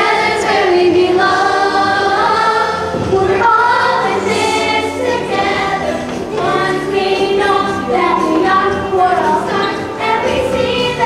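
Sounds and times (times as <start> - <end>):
musical accompaniment: 0.0 - 11.0
young cast singing in chorus: 0.0 - 11.0.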